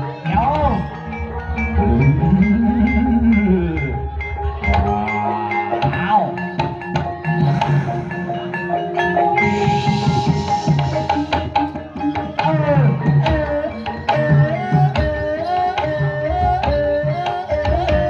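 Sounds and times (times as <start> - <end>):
mallet-struck keyed instruments: 0.0 - 18.0
hand drum strokes: 0.4 - 18.0
low tone rising and falling: 1.0 - 5.1.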